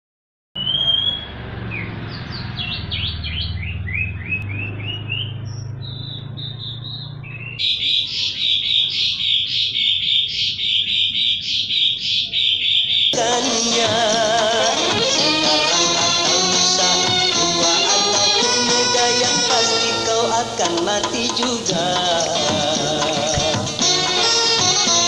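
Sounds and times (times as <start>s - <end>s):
birds chirping: 0.6s - 25.0s.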